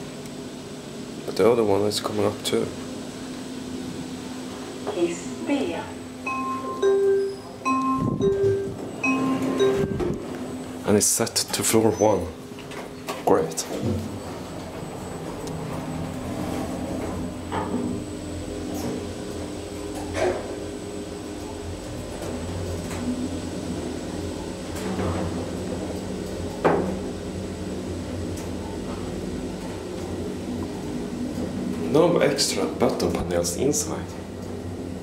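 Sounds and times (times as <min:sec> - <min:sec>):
elevator hum: 0:00.0 - 0:35.0.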